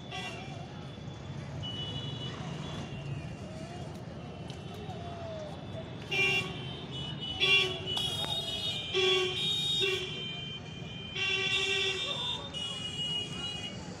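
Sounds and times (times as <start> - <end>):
low traffic rumble: 0.0 - 14.0
vehicle horns honking: 6.1 - 13.8.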